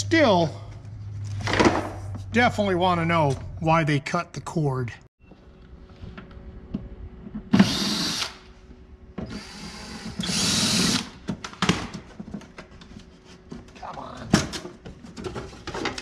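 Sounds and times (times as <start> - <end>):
cordless drill running: 7.6 - 8.4, 9.3 - 11.2.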